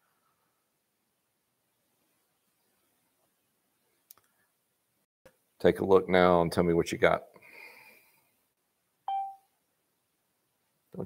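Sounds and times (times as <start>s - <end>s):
short electronic beep: 9.1s - 9.5s.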